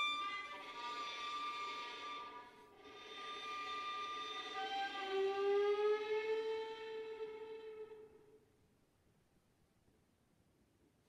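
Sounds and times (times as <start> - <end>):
solo violin sustained notes: 0.0 - 8.4.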